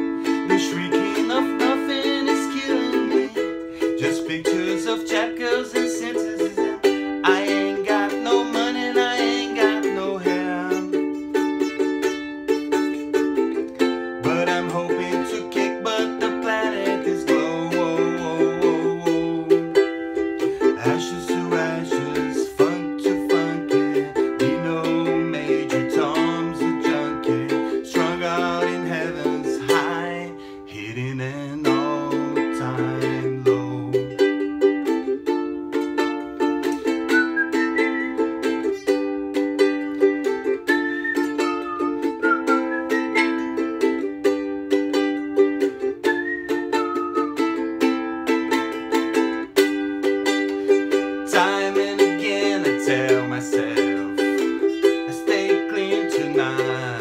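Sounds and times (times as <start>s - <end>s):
ukulele strumming: 0.0s - 57.0s
wavering whistled melody: 36.8s - 44.0s, 45.8s - 48.3s, 52.2s - 57.0s.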